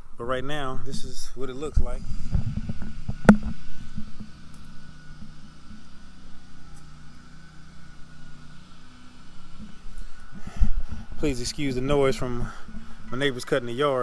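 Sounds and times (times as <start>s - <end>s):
lawnmower engine running: 0.0s - 14.0s
low bumps: 1.7s - 6.0s.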